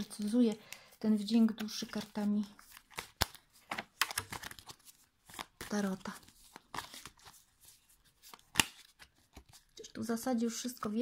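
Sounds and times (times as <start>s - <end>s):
cards rustling and clicking: 0.0s - 9.9s.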